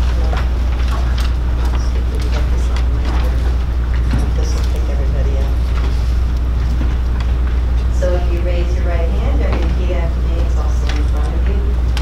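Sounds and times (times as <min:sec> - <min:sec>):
person speaking: 0:00.0 - 0:06.3, 0:07.8 - 0:12.0
faint room hubbub: 0:00.0 - 0:12.0
steady low hum: 0:00.0 - 0:12.0.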